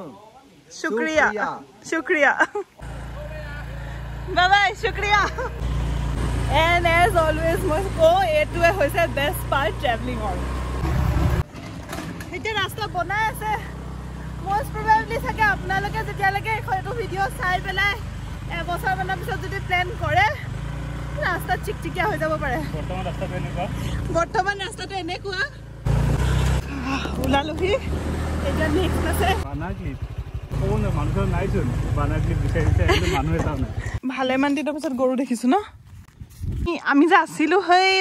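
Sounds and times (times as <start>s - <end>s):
scooter engine hum: 2.8s - 34.0s
wind on microphone: 35.8s - 36.8s.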